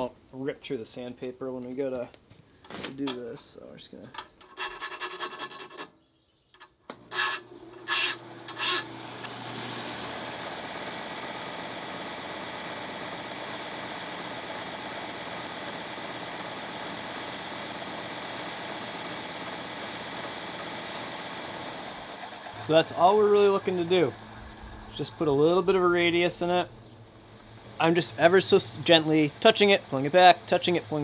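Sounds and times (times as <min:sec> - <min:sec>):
disc sander running: 0:06.9 - 0:31.0
file scraping steel: 0:07.0 - 0:10.1
blade grinding on sander: 0:07.0 - 0:11.0, 0:16.3 - 0:26.8.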